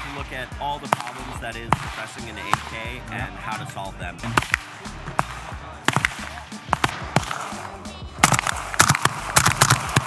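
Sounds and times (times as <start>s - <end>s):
suppressed rifle shots: 8.2s - 10.0s.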